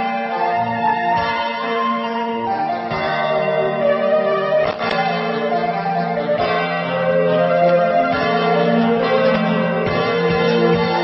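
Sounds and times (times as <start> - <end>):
bell-like chimes over held notes: 0.0 - 11.0.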